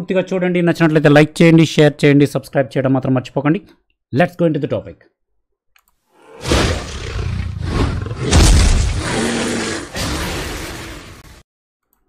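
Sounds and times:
loud beast roar: 6.2s - 11.4s.

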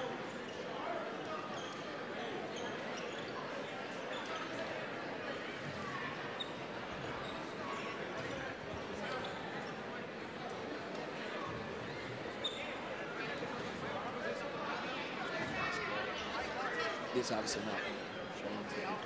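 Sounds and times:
crowd chatter: 0.0s - 19.0s.

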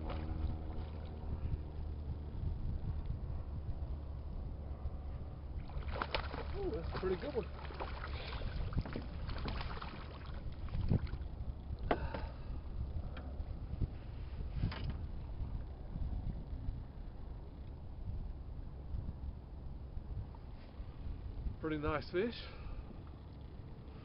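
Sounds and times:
water lapping against boat hull: 0.0s - 1.4s, 5.5s - 12.6s
wind on microphone: 0.0s - 21.6s.

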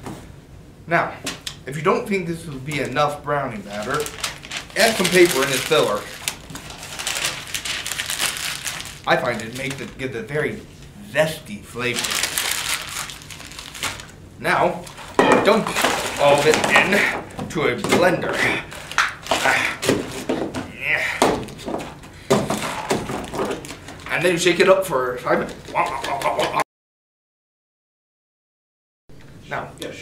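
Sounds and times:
paper crumpling: 3.6s - 10.2s, 11.8s - 14.2s, 14.8s - 17.1s, 18.3s - 20.3s, 22.8s - 24.4s
objects knocking in wicker basket: 15.1s - 24.2s.

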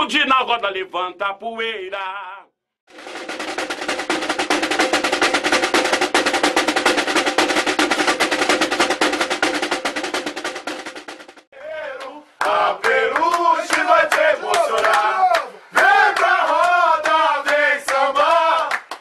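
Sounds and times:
samba drums rolling: 2.9s - 11.5s
voices shouting: 13.0s - 16.4s.

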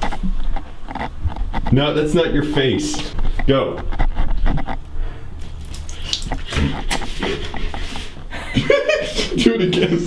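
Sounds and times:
water splashing into bathtub: 5.4s - 8.0s.

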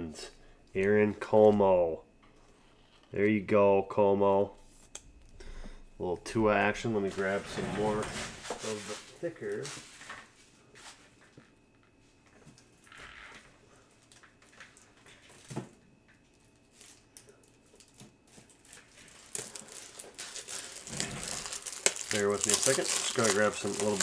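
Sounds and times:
rustling and handling noises: 6.4s - 24.0s
plastic packaging crinkling: 16.4s - 24.0s.

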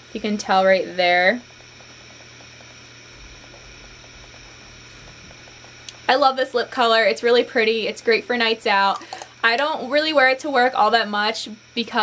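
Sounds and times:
steady low hiss: 0.0s - 10.0s.

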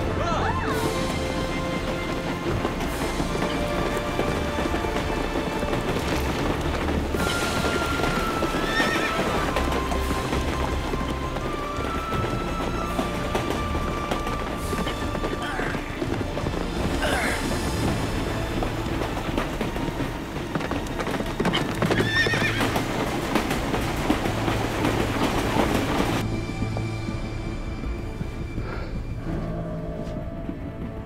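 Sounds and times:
film score music: 0.0s - 31.0s
horse hoofbeats galloping: 0.0s - 31.0s
horse whinny: 7.2s - 9.6s, 21.5s - 22.8s.

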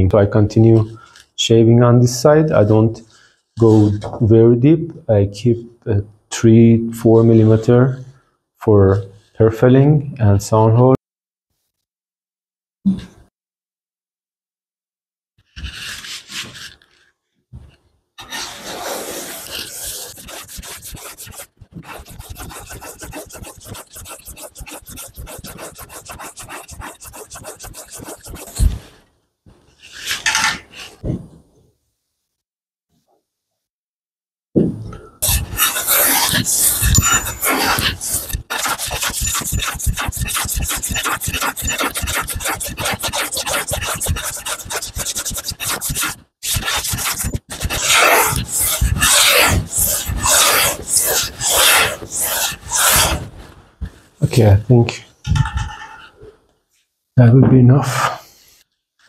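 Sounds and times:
hand plane shaving wood: 18.2s - 28.7s, 35.2s - 53.2s.

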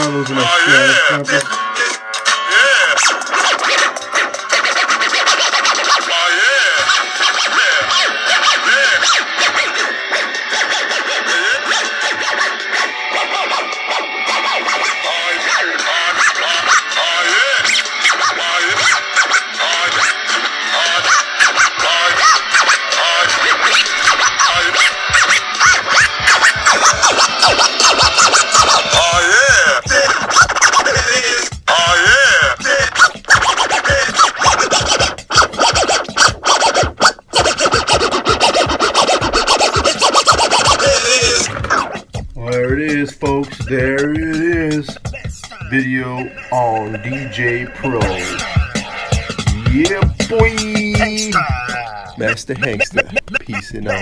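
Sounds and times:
dj mix music: 0.0s - 54.0s
record scratching: 0.0s - 54.0s.

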